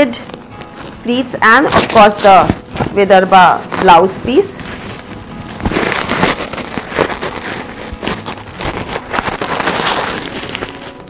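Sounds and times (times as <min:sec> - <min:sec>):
silk fabric rustling: 0:00.3 - 0:11.0.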